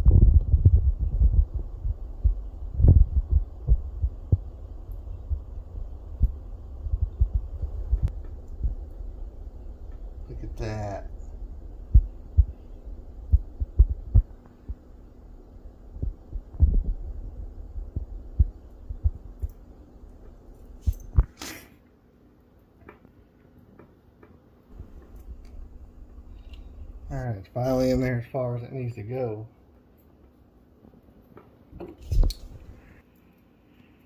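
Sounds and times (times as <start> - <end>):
short exhale: 21.3 - 21.8.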